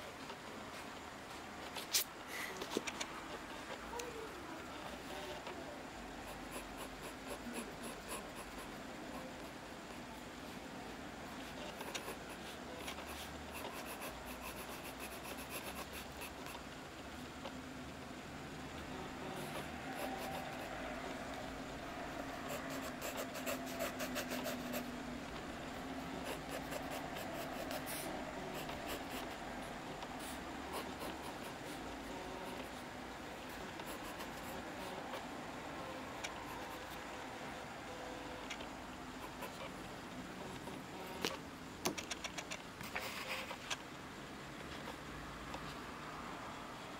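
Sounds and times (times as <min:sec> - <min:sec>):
pencil scratching on paper: 0:06.2 - 0:10.1, 0:11.4 - 0:16.6, 0:19.2 - 0:21.5, 0:22.2 - 0:25.0, 0:26.0 - 0:32.9, 0:33.5 - 0:35.2, 0:36.2 - 0:37.0.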